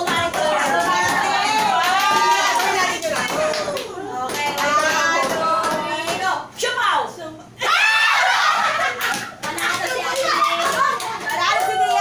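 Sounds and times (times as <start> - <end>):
women shouting excitedly: 7.6 - 8.6.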